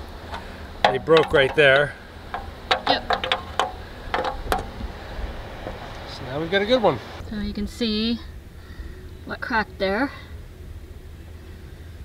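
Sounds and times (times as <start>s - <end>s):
low steady rumble: 0.0s - 12.0s
clicks and taps on plastic vent cover: 0.8s - 4.8s.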